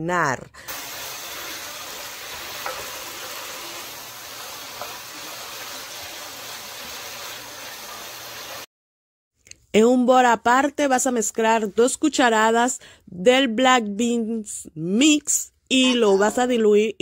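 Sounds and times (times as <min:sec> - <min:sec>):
food sizzling in a frying pan: 0:00.7 - 0:08.7.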